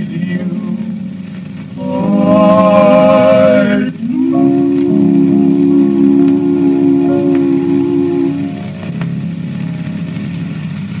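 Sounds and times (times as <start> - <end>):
record crackles: 0.0 - 11.0
record surface hiss: 0.0 - 11.0.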